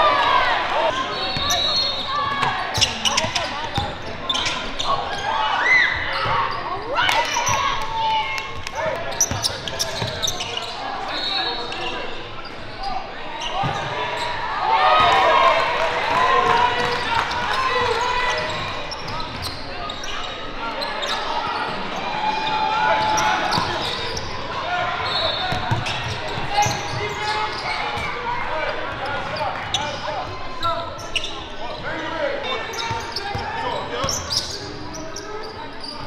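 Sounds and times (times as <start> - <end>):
voices echoing in a hall: 0.0 - 36.0.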